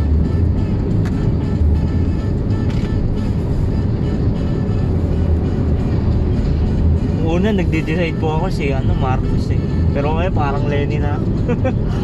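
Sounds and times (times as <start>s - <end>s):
car cabin road and engine rumble: 0.0s - 12.0s
music playing: 0.0s - 12.0s.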